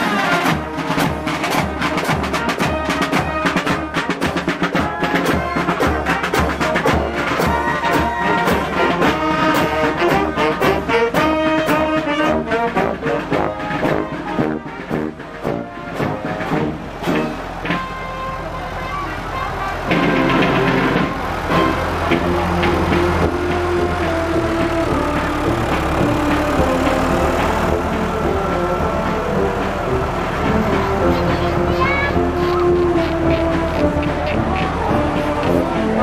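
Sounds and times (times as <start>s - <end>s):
marching brass band: 0.0s - 36.0s
tractor engine humming: 0.0s - 36.0s.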